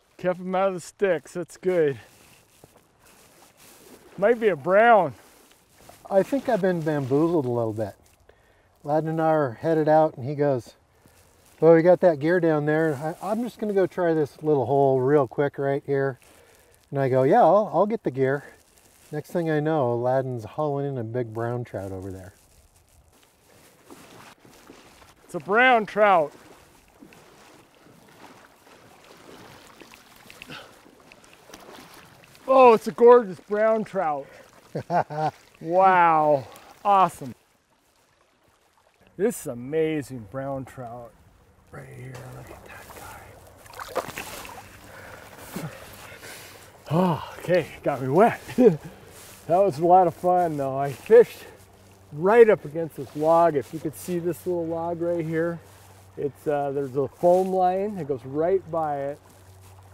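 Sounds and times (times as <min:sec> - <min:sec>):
flowing river water: 0:00.0 - 0:19.6, 0:22.8 - 0:59.9
small water splashes: 0:00.0 - 0:59.9
river water rushing: 0:24.0 - 0:39.2, 0:41.8 - 0:49.8.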